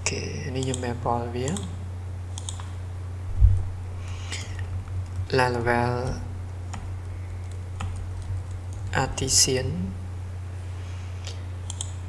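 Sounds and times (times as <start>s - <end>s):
low electrical hum: 0.0s - 12.0s
keyboard keystrokes: 11.7s - 12.0s.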